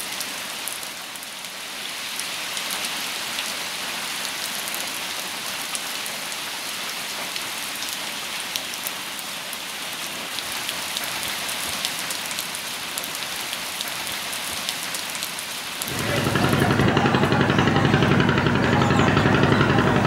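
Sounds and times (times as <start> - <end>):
rain falling on leaves: 0.0 - 17.0.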